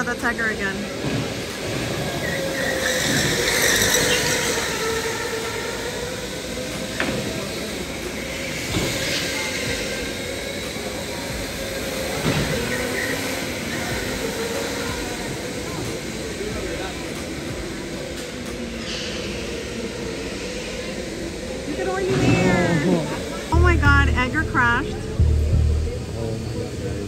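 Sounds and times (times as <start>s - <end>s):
electric go-kart motors whining: 0.0s - 27.0s.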